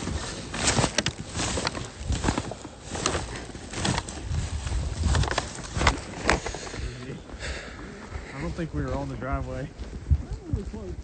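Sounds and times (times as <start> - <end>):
plastic and paper bags rustling: 0.0 - 6.9
footsteps crunching in snow: 0.0 - 11.0.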